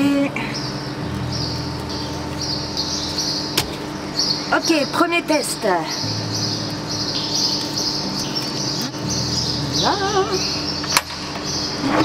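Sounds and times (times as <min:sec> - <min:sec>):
birds chirping: 0:00.0 - 0:12.0
steady low hum: 0:00.0 - 0:12.0.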